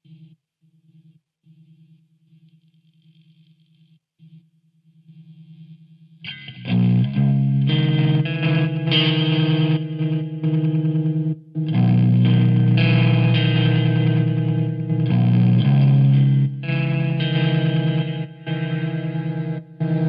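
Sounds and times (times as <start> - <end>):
distorted electric guitar chords: 6.2 - 20.0.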